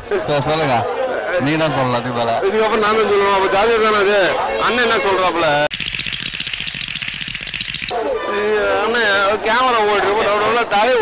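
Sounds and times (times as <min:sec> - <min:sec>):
rapid rattle of clicks: 0:05.7 - 0:08.0.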